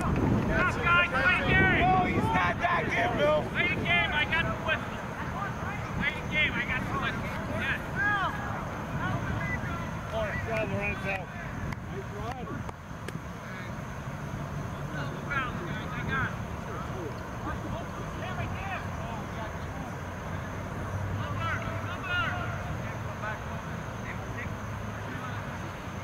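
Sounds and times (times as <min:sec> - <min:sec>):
distant shouts of players: 0:00.0 - 0:14.0, 0:14.6 - 0:26.0.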